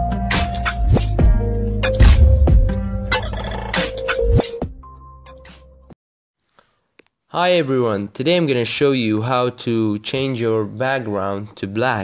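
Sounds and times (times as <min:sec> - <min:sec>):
sharp electronic hits: 0:02.0 - 0:04.1.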